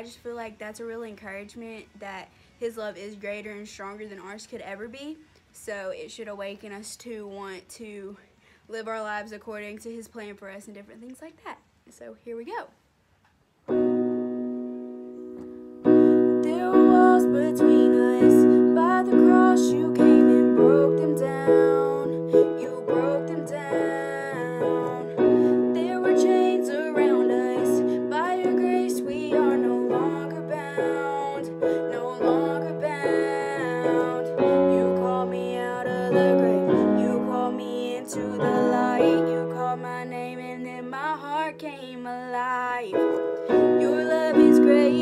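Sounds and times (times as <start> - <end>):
piano chords: 13.7 - 45.0
woman singing: 15.9 - 45.0.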